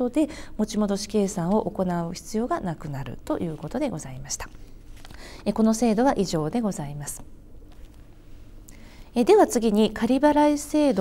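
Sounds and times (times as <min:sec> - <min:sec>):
woman lecturing: 0:00.0 - 0:04.7, 0:05.4 - 0:07.3, 0:09.1 - 0:11.0.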